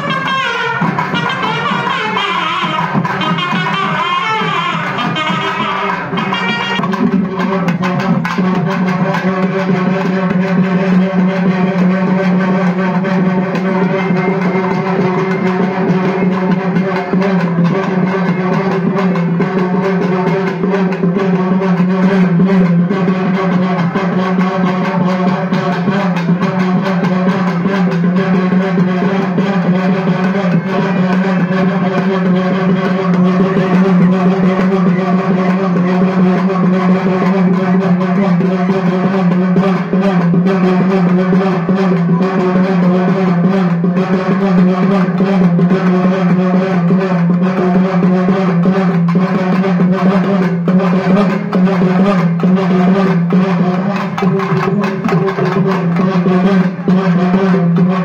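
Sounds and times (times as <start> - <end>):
rapid drumming: 0.0 - 58.0.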